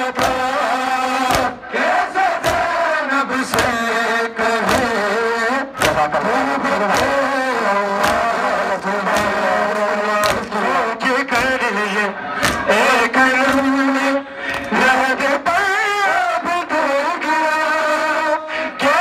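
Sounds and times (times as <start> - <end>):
hands slapping chests in unison: 0.0 - 4.0, 4.6 - 14.8
men chanting: 0.0 - 19.0.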